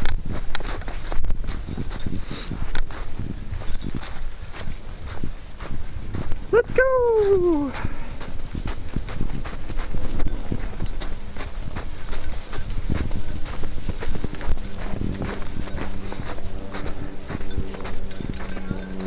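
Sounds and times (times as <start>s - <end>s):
handheld camera rumbling: 0.0s - 6.5s, 7.4s - 19.0s
footsteps crunching through snow: 0.0s - 19.0s
steady low hum: 7.5s - 19.0s.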